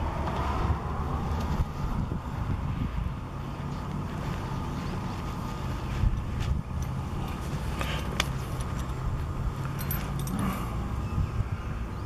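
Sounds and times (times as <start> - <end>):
wind rumble on microphone: 0.0 - 12.0
light clicks and clinks: 6.7 - 9.0, 9.6 - 10.8.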